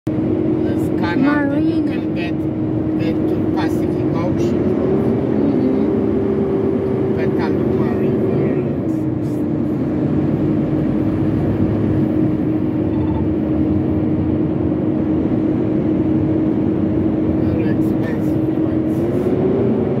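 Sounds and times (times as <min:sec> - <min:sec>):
truck cab road and engine noise: 0:00.1 - 0:20.0
droning tone: 0:11.2 - 0:14.8.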